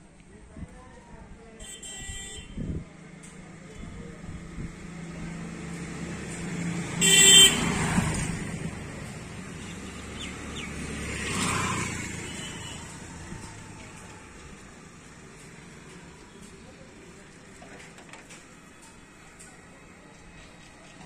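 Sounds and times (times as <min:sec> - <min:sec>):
vehicle passing by: 0:04.3 - 0:16.2.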